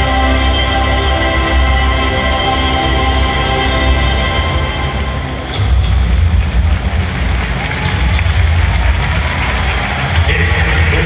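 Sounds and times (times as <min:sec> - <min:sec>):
stadium crowd din: 0:04.9 - 0:11.0.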